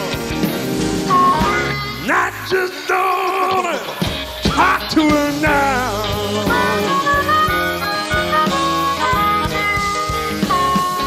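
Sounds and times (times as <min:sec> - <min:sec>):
harmonica holding notes: 0:00.0 - 0:03.5, 0:05.8 - 0:11.0
live blues band playing: 0:00.0 - 0:11.0.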